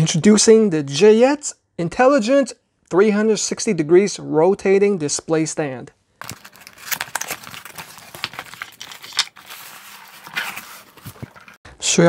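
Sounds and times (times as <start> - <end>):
packaging rustling and crinkling: 6.2 - 11.6.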